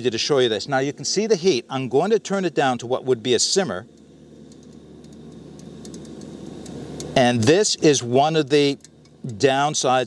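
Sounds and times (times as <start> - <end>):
gas burner hissing: 0.0 - 10.0.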